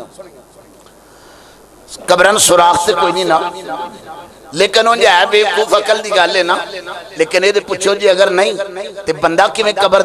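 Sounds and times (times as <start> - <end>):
man speaking: 1.9 - 10.0.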